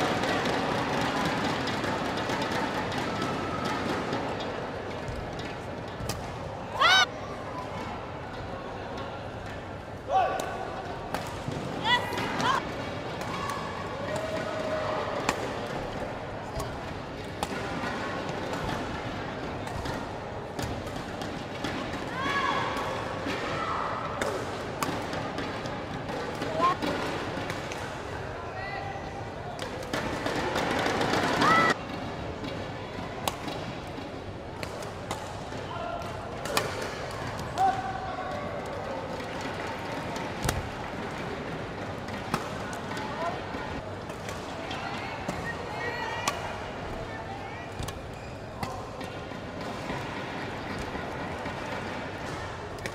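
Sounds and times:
racket hitting shuttlecock: 0:16.6 - 0:23.5, 0:24.1 - 0:28.0, 0:34.6 - 0:37.9
shoes squeaking on court floor: 0:47.9 - 0:48.7.

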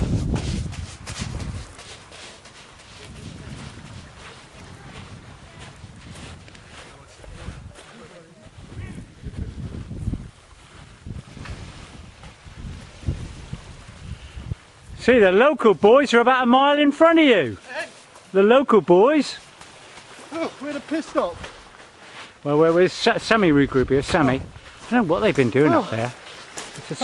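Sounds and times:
footsteps on pebbles: 0:00.0 - 0:08.8
wind buffeting microphone: 0:00.0 - 0:15.9, 0:23.2 - 0:26.1.

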